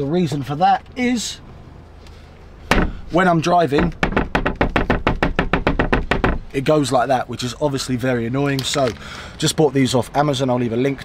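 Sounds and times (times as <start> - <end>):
cupboard door rattling in frame: 3.8 - 6.5.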